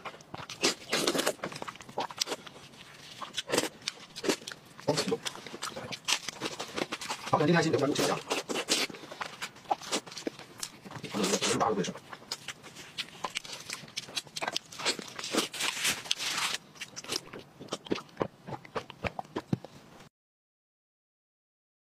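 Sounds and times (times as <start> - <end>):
wet chewing with lip smacks: 0.1 - 7.3, 8.0 - 19.8.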